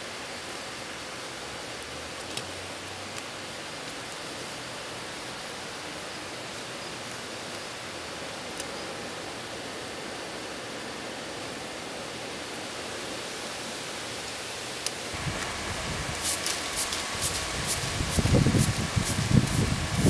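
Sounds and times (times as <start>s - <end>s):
broom sweeping rock: 15.1s - 20.0s
forge fire rushing: 15.1s - 20.0s.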